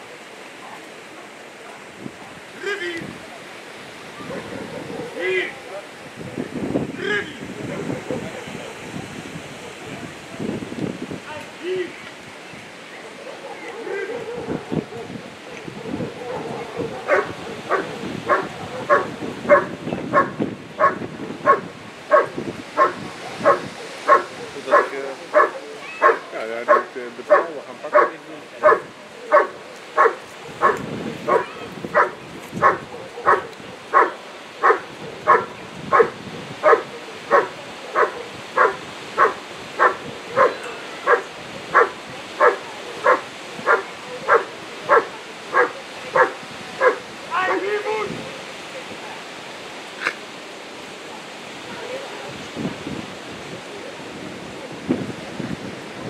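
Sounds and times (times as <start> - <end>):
dog barking steadily: 4.2 - 5.7, 13.0 - 47.6.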